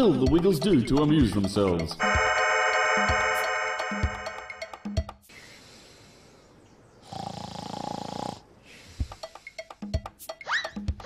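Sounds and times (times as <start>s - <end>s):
soft breathing: 5.3s - 6.6s, 8.6s - 9.7s
man snoring: 7.0s - 8.5s.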